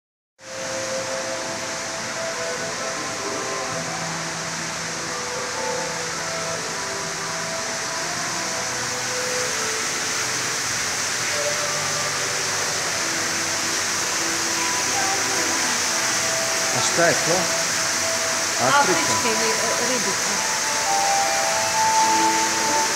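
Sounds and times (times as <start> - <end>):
faint sustained tones: 0.4 - 22.9
water circulation and ventilation: 0.4 - 22.9.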